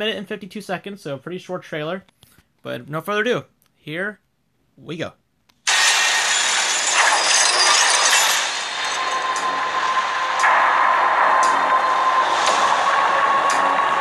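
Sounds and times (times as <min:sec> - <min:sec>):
steady ringing tone: 0:05.7 - 0:14.0
dense rushing noise: 0:09.7 - 0:14.0.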